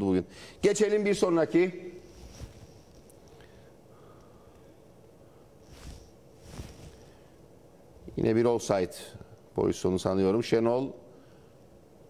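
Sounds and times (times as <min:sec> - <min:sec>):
faint background noise: 0:00.0 - 0:12.0
soft brief rushes of noise: 0:05.7 - 0:07.1.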